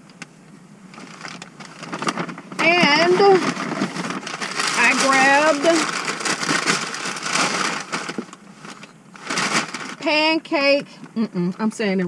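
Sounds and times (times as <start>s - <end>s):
paper and bag crinkling: 0.9s - 10.2s.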